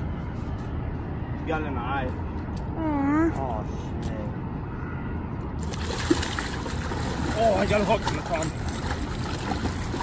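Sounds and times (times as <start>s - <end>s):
fish thrashing in shallow water: 5.6s - 10.0s
water splashing: 5.6s - 10.0s.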